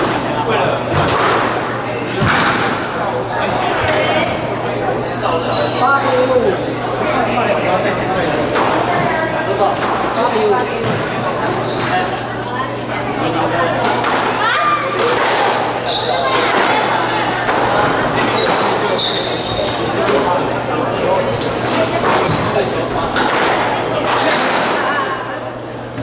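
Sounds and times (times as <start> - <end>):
shoes squeaking on wooden floor: 11.4 - 12.6, 15.3 - 16.4, 18.2 - 22.8
racket striking squash ball: 21.7 - 24.8.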